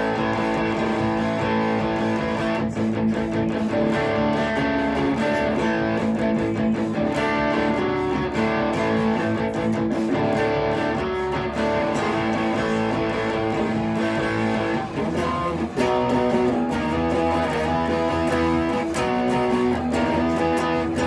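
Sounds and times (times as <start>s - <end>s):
overdriven electric guitar chords: 0.0s - 21.0s.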